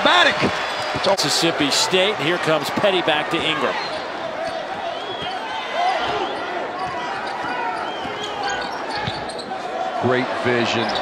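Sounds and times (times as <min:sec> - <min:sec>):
arena crowd murmur: 0:00.0 - 0:11.0.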